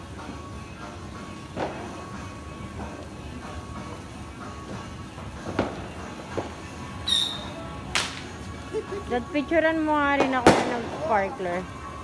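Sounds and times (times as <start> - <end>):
firecracker crack: 5.5 - 8.4, 10.2 - 11.2
short high-pitched whistle: 7.0 - 7.6.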